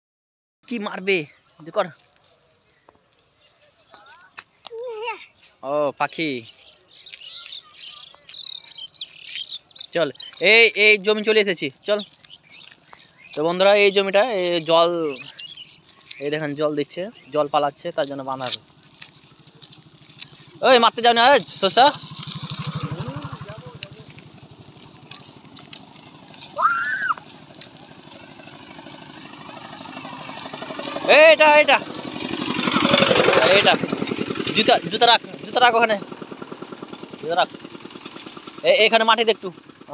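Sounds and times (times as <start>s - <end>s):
small birds chirping: 0.7s - 39.9s
engine chugging: 5.2s - 39.9s.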